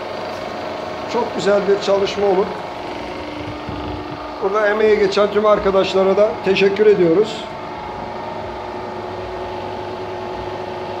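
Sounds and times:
electric motor and alternator humming: 0.0 - 11.0.

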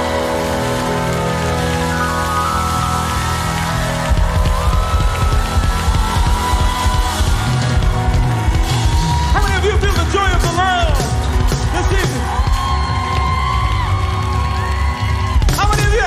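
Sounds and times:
sustained keyboard chords: 0.0 - 13.6
bass and drums beat: 1.8 - 16.0.

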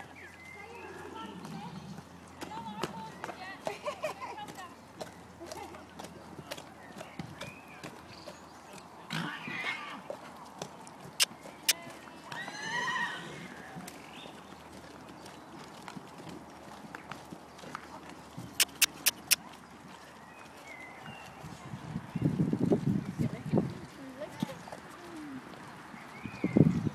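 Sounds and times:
horse hoofbeats cantering: 0.0 - 26.9.

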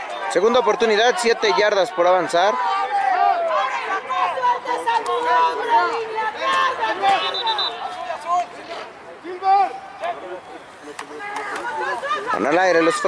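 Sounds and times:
overlapping voices calling out: 0.0 - 13.0.

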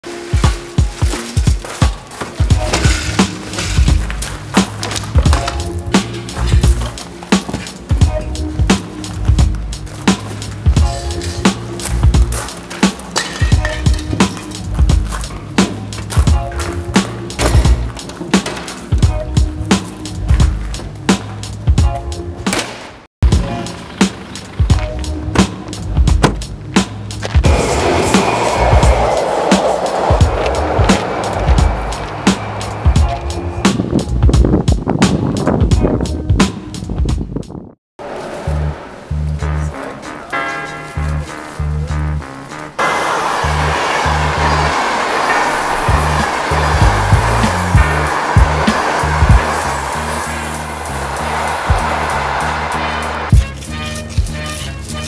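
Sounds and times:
music with heavy beat and bass: 0.0 - 22.5, 23.2 - 37.6, 38.5 - 42.8, 45.8 - 55.0
hissing layer: 27.4 - 33.0, 42.8 - 52.7.

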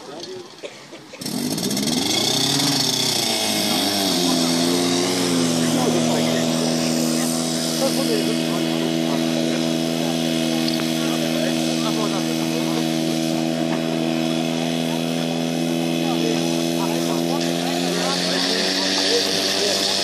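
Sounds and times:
fire pump engine running: 0.0 - 20.0
voices: 0.0 - 20.0.

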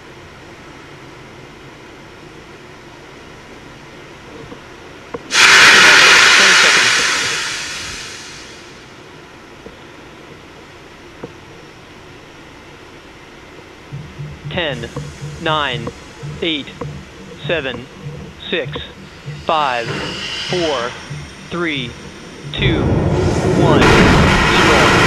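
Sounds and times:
pressurized gas venting: 5.3 - 8.8
steady low hiss: 10.7 - 25.0.

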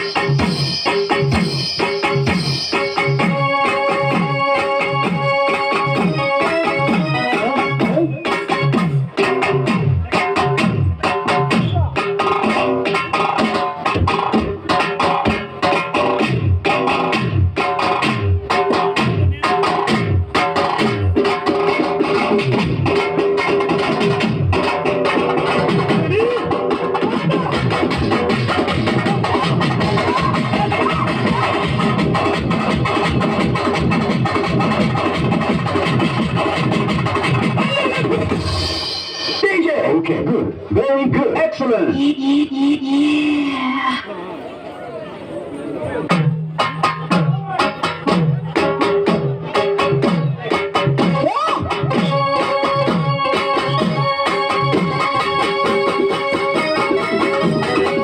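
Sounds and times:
fast drum beats: 0.0 - 41.8, 46.1 - 58.0
folk dance music: 0.0 - 58.0
keyboard: 0.0 - 58.0.

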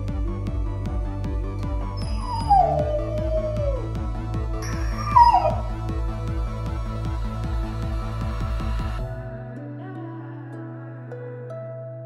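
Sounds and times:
electronic music with beat: 0.0 - 9.3
dog whining: 2.0 - 5.9.

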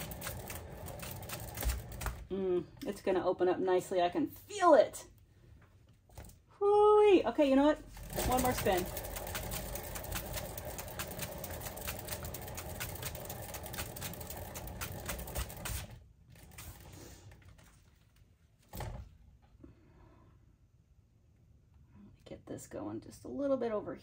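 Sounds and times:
spinner rattling with clicks: 0.0 - 2.2, 7.9 - 16.0.

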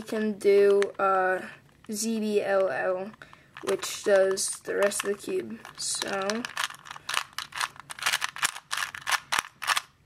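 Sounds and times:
puzzle cube clicking: 2.5 - 10.0.

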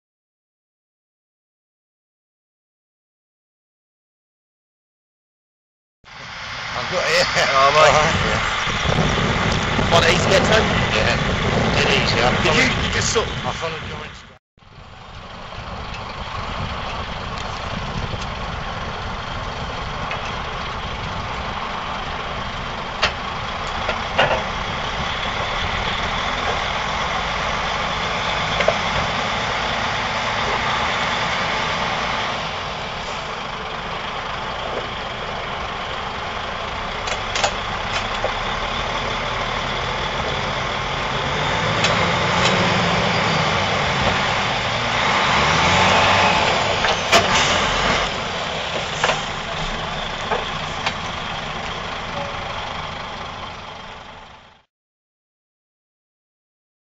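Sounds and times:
diesel engine running: 6.1 - 54.7.

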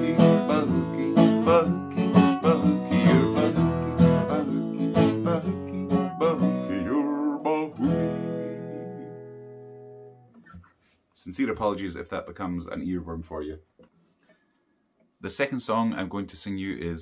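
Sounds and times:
acoustic guitar strumming: 0.0 - 10.7.

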